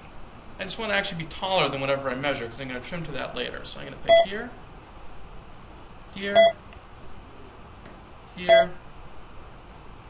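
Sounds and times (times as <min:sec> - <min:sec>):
electronic confirmation beep: 0:06.4 - 0:06.6, 0:08.5 - 0:08.8.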